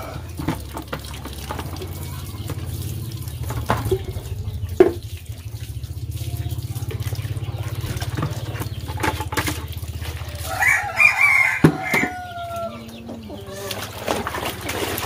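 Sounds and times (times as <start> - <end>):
water pouring from hose: 0.0 - 15.0
rooster crowing: 10.3 - 13.9.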